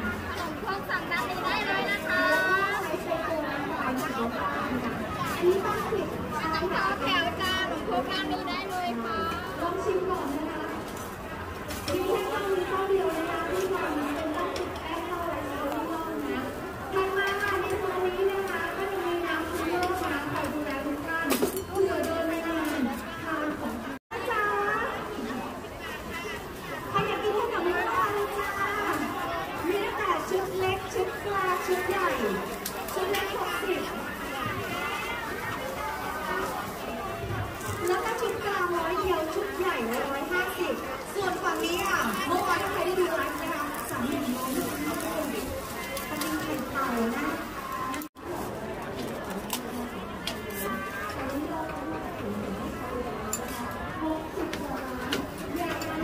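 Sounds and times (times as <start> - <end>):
chatter of voices: 0.0 - 56.0
people talking at once: 0.0 - 56.0.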